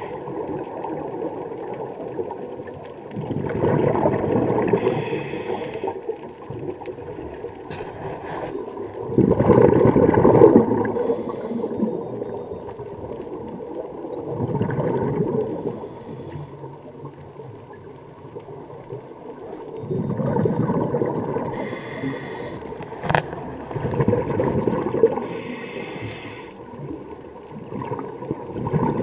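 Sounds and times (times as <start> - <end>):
bubbling regulator exhale: 3.2 - 6.1, 7.7 - 12.6, 14.2 - 16.7, 19.8 - 29.0
hissing regulator inhale: 4.8 - 6.0, 11.0 - 11.8, 15.6 - 16.6, 21.5 - 22.7, 25.2 - 26.6.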